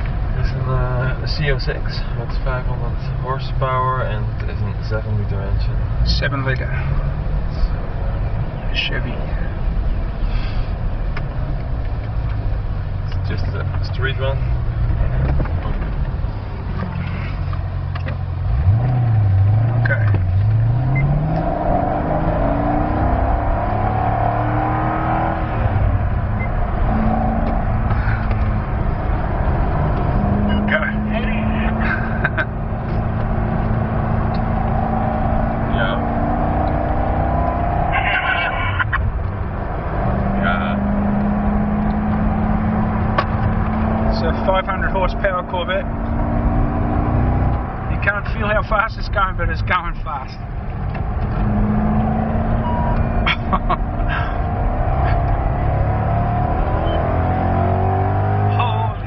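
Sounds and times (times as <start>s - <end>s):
car engine accelerating: 0.0s - 59.0s.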